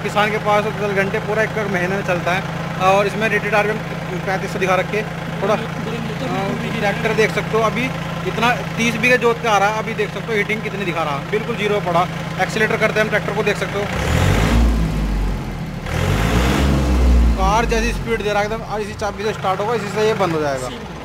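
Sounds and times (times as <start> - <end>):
voices in background: 0.0 - 13.9
tractor diesel engine idling: 0.0 - 21.0
low rumble with hiss: 16.6 - 21.0.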